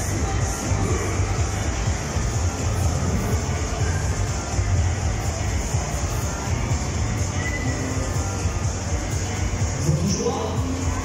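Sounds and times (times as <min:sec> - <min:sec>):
fairground music with thudding bass: 0:00.0 - 0:11.0.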